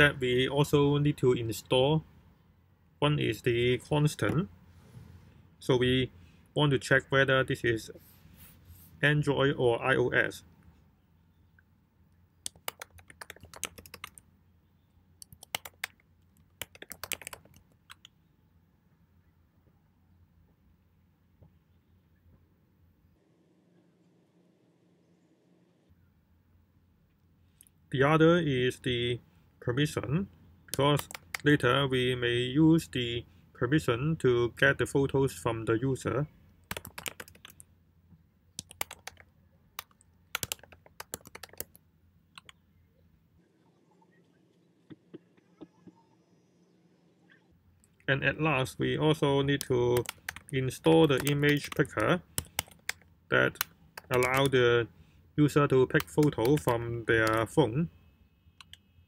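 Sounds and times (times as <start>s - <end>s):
keyboard keystroke clicks: 12.5s - 14.2s, 15.2s - 16.0s, 16.6s - 18.1s, 30.7s - 31.5s, 36.7s - 37.6s, 38.6s - 39.2s, 39.8s - 41.7s, 49.6s - 50.5s, 53.6s - 54.5s, 56.0s - 57.4s.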